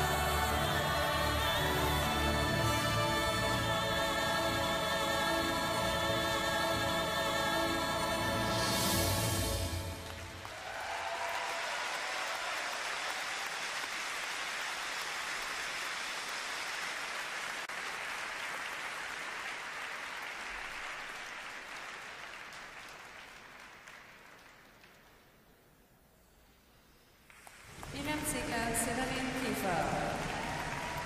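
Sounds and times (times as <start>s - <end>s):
audience applause: 10.0s - 25.4s, 27.3s - 31.0s.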